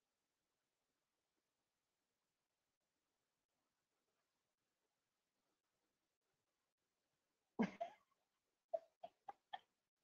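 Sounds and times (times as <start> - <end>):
person coughing: 7.6 - 8.0.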